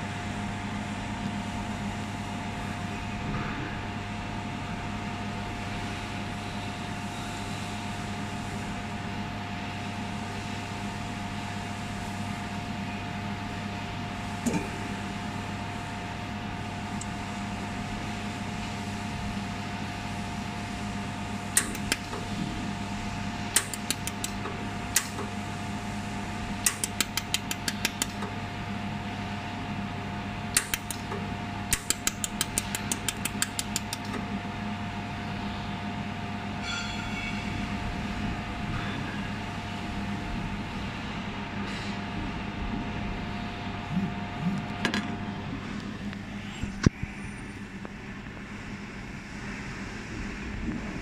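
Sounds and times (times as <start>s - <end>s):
cooling fan running: 0.0s - 51.0s
welding machine humming: 9.8s - 36.4s
sharp clicks of weld pulses: 21.5s - 22.3s, 23.5s - 25.3s, 26.6s - 28.3s, 30.5s - 34.2s.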